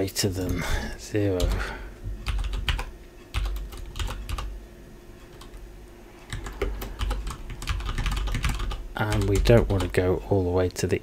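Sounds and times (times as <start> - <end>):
typing on computer keyboard: 2.2 - 4.5, 6.3 - 10.0.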